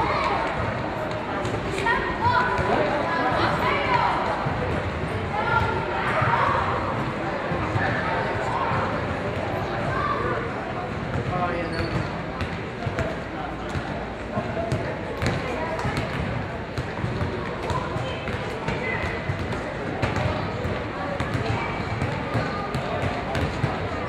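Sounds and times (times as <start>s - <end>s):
indistinct chatter: 0.0s - 24.0s.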